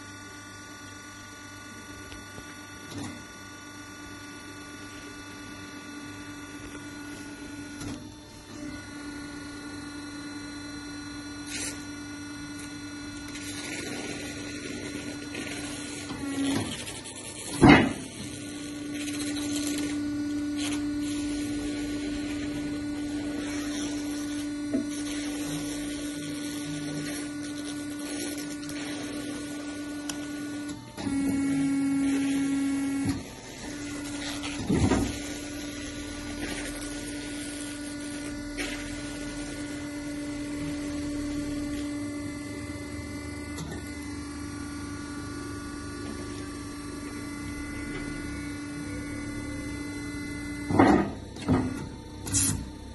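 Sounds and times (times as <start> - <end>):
electric motor humming: 1.5 - 52.9.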